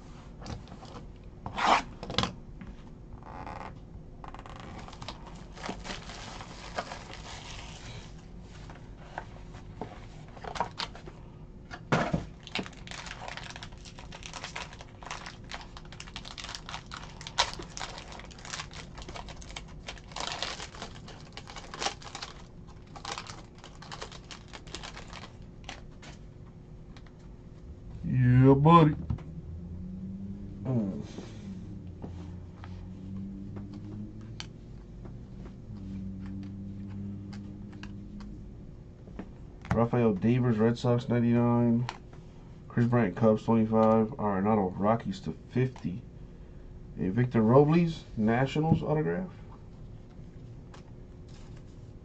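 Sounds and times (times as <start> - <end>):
foil wrapper crinkling and tearing: 4.4 - 8.0, 12.4 - 25.9.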